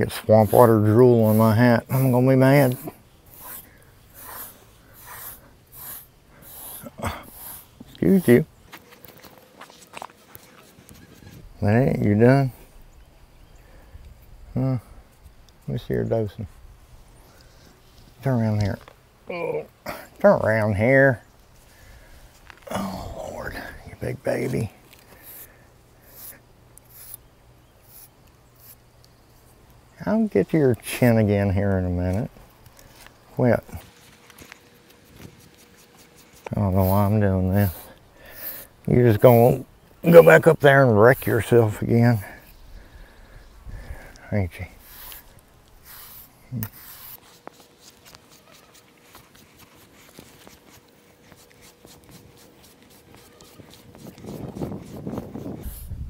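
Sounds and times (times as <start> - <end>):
grooming rake swishing through fur: 0.0 - 11.4, 33.8 - 39.4, 44.8 - 56.0
scratching coarse animal coat: 0.0 - 12.1, 32.7 - 40.5, 44.3 - 55.9.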